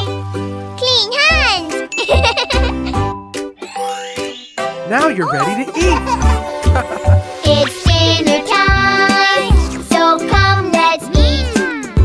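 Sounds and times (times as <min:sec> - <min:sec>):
child exclaiming: 0:00.8 - 0:01.7
chime-like jingles: 0:01.9 - 0:06.2
children's cartoon song: 0:03.6 - 0:12.0.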